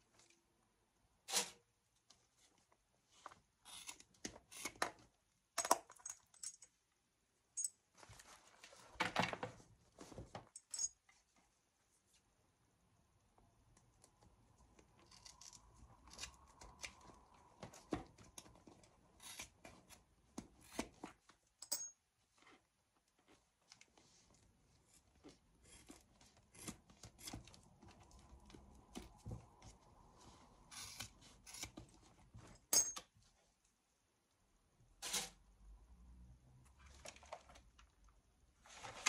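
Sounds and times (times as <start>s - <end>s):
metal ring clinking: 10.6s - 11.0s, 21.6s - 22.0s, 32.7s - 33.0s.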